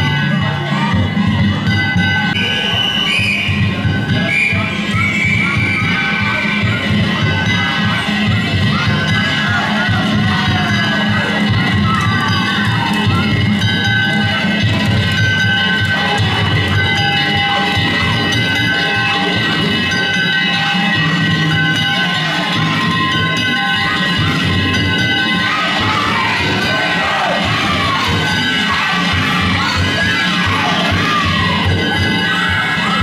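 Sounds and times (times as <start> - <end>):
crowd shouting and chanting: 0.0 - 33.0
drum beating: 0.0 - 33.0
hand gongs ringing: 6.4 - 33.0.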